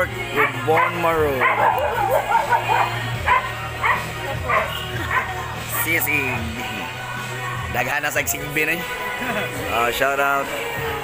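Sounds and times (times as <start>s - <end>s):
background music: 0.0s - 11.0s
dog barking: 0.4s - 5.5s.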